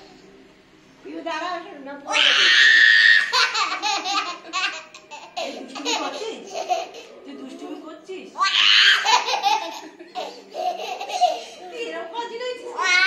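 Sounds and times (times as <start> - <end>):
toddler laughing: 3.0 - 7.1, 8.6 - 11.6.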